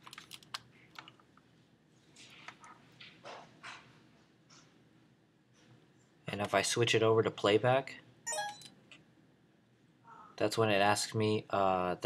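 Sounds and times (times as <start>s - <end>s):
camcorder beep-chime: 8.3s - 8.7s.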